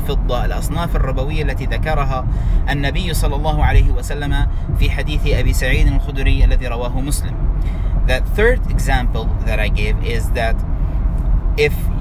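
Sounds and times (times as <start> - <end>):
man speaking: 0.0 - 7.4, 8.0 - 10.6, 11.6 - 12.0
car cabin rumble: 0.0 - 12.0.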